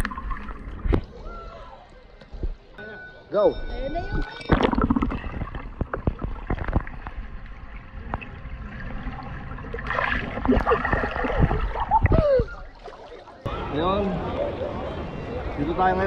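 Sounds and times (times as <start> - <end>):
water splashing and gurgling: 4.4 - 13.5.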